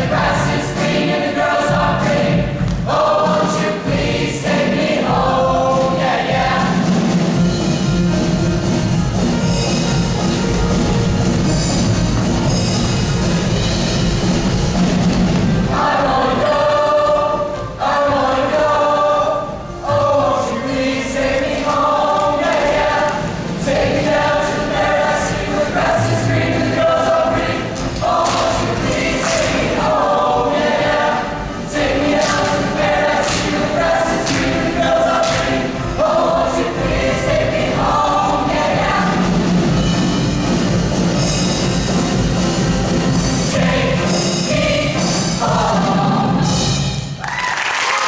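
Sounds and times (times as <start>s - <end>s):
choir singing: 0.0s - 8.3s, 14.7s - 46.9s.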